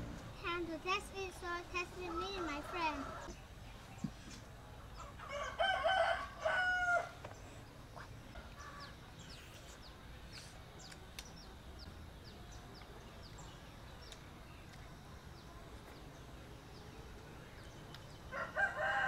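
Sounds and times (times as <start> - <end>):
rooster crowing: 5.2 - 7.2, 18.3 - 19.0.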